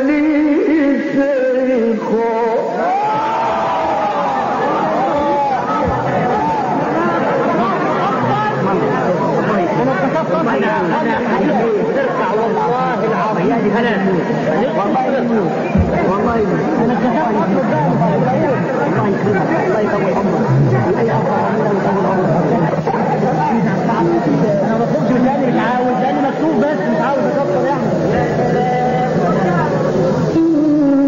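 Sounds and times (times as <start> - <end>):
babble of many people: 0.0 - 31.0.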